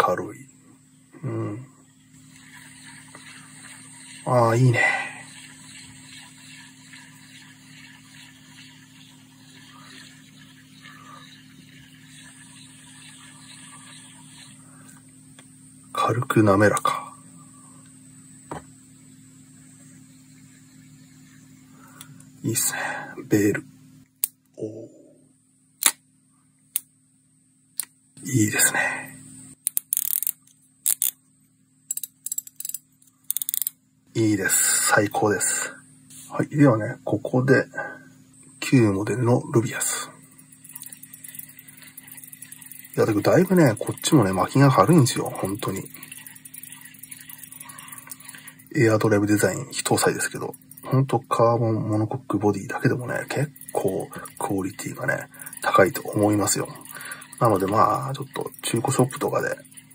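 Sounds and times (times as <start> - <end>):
fishing reel whirring and ticking: 1.8 - 22.8, 27.8 - 31.2, 31.8 - 35.8, 38.5 - 59.9
low hum: 33.4 - 59.9.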